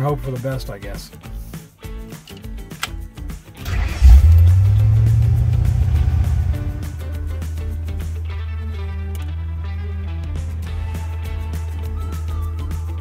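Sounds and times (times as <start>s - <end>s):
car engine starting and revving: 3.6s - 8.4s.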